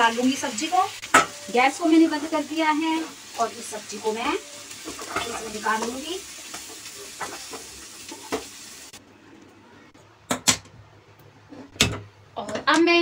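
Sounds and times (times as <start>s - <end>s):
food sizzling: 0.0s - 9.0s.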